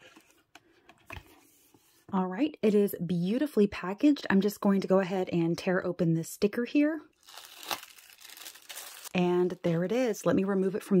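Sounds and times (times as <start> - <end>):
tissue paper crinkling and rustling: 7.2 - 9.2.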